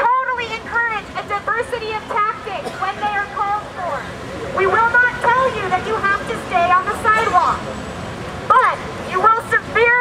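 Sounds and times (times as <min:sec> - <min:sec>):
woman speaking through megaphone: 0:00.0 - 0:07.6, 0:08.5 - 0:10.0.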